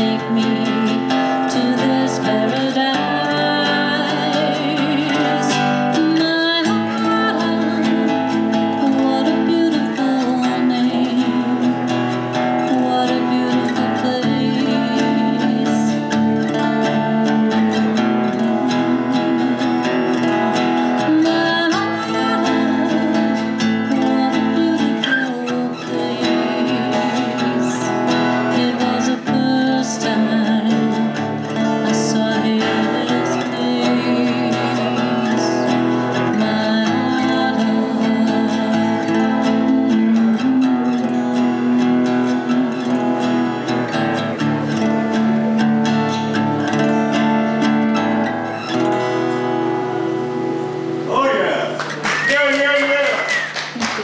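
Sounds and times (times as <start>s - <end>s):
woman singing: 0.0s - 48.4s
acoustic guitar strummed: 0.0s - 54.0s.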